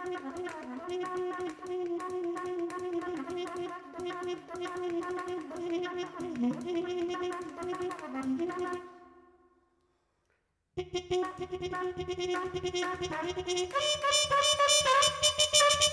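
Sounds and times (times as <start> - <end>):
trumpet playing wavering tone: 0.0 - 9.0, 10.8 - 15.9.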